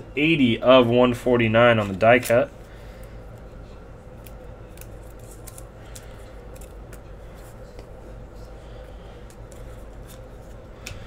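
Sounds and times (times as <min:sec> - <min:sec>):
low steady hum: 0:00.0 - 0:11.0
trading cards flicking and clicking: 0:01.8 - 0:08.2, 0:08.8 - 0:11.0.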